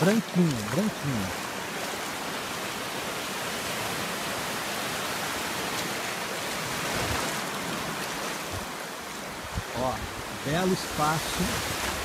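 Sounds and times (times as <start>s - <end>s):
small waves breaking on shore: 0.0s - 12.0s.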